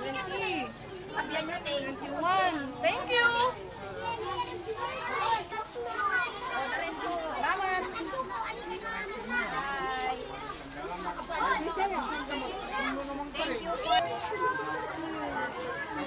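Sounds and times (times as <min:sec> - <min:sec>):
adult voices: 0:00.0 - 0:16.0
children chattering and calling: 0:00.0 - 0:16.0.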